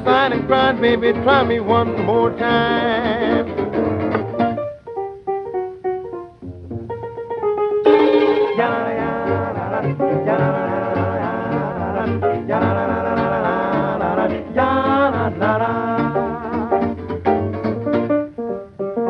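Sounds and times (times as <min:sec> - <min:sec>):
plucked string notes: 0:00.0 - 0:19.0
swing band playing: 0:00.0 - 0:19.0.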